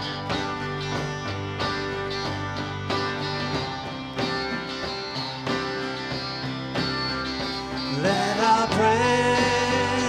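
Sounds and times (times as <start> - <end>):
electric bass: 0.0 - 10.0
keyboard chords: 0.0 - 10.0
strummed acoustic guitar: 0.0 - 10.0.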